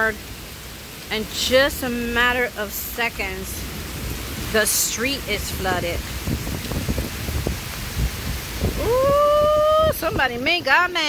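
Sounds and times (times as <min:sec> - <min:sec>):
heavy rain pouring: 0:00.0 - 0:11.0
low thunder rumbling: 0:03.6 - 0:10.6
person saying ooh: 0:08.8 - 0:10.0.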